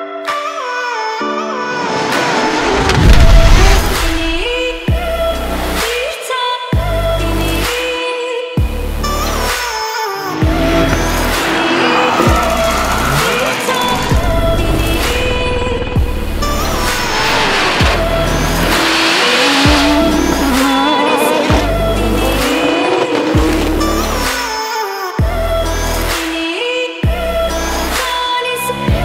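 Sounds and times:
car engines revving: 1.8 - 5.0, 8.9 - 24.8
tyres squealing: 10.1 - 14.3, 16.4 - 24.9.

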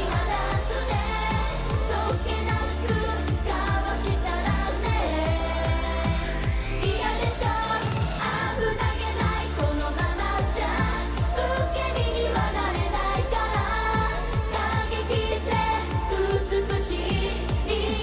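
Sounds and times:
bass: 0.0 - 18.0
women singing pop song: 0.0 - 18.0
fast drum beat: 8.8 - 18.0.

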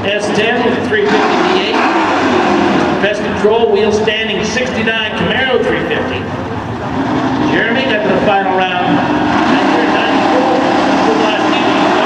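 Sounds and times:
drag racing engines running: 0.0 - 12.0.

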